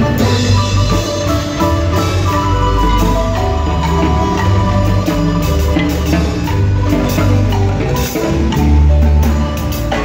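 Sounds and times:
deep bass notes: 0.0 - 10.0
marimba playing: 0.0 - 10.0.

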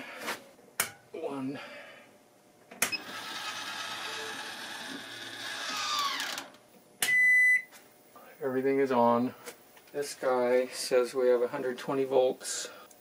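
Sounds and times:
whirring hum with high tones: 2.8 - 7.3.

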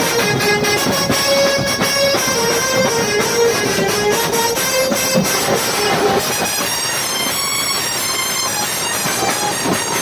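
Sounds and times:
massed drums: 0.0 - 10.0.

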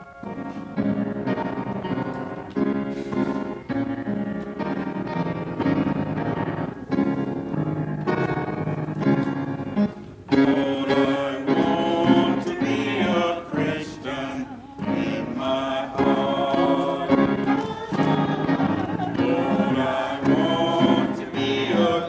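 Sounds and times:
piano playing slow chords: 0.0 - 22.0
choir singing: 10.3 - 22.0.

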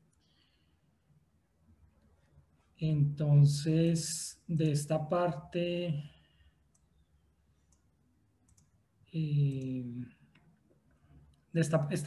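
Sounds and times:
computer mouse clicks: 6.7 - 8.8.

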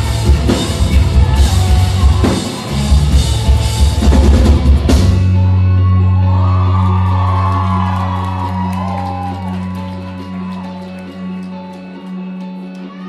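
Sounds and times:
live rock band playing: 0.0 - 13.0
crowd shouts and whoops: 5.2 - 13.0.

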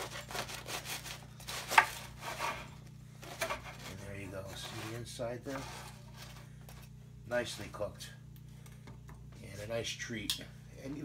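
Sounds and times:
bread knife sawing through crust: 0.0 - 6.4.

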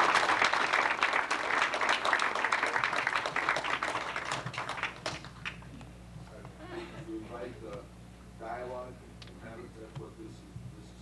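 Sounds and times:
audience applauding: 0.0 - 5.7.

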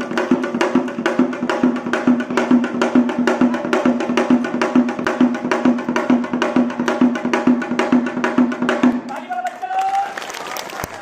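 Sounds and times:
children clapping: 9.0 - 11.0.

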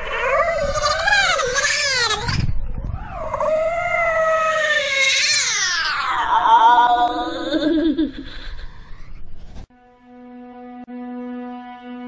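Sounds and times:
cat-like yowl: 0.0 - 2.4, 3.0 - 7.8.

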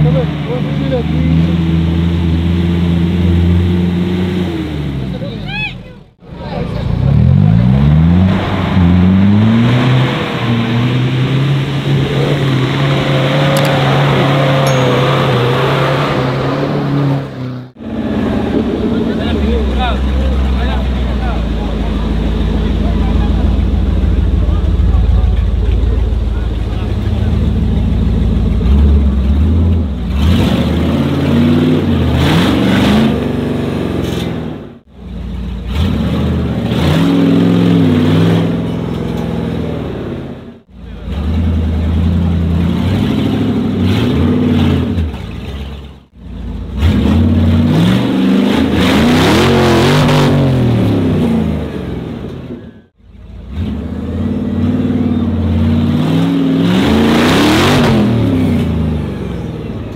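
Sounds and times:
off-road engines revving hard: 0.0 - 59.9.

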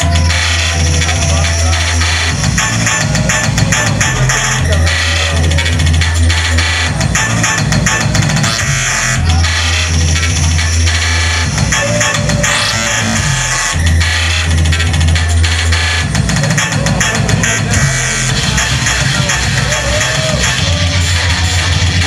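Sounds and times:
long held bass notes: 0.0 - 22.0
loud electronic music: 0.0 - 22.0.

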